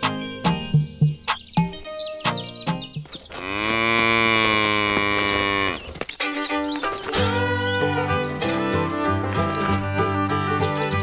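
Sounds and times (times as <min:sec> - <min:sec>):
background music with plucked strings: 0:00.0 - 0:03.2, 0:05.6 - 0:11.0
cow mooing: 0:03.4 - 0:05.9.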